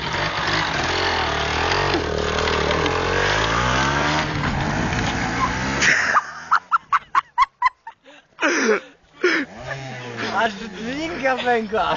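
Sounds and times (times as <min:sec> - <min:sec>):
dirt bike engine revving: 0:00.0 - 0:06.9, 0:09.2 - 0:11.9.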